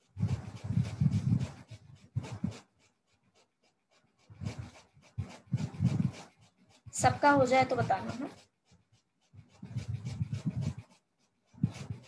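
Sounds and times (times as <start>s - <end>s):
close breathing: 0.0s - 12.0s.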